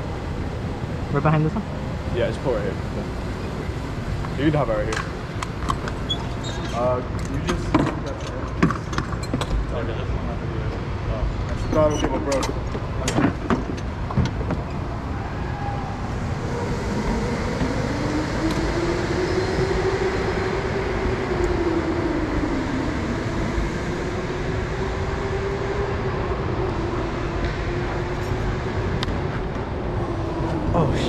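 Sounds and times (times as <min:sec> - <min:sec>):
wavering hum: 0:13.8 - 0:31.0.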